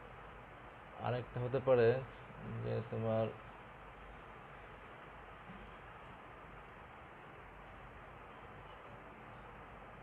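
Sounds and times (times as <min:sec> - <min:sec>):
faint background hiss: 0:00.0 - 0:10.0
man lecturing: 0:01.0 - 0:03.4.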